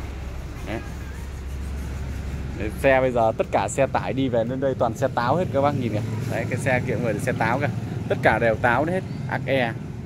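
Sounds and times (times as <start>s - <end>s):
vehicle engine rumbling: 0.0s - 10.0s.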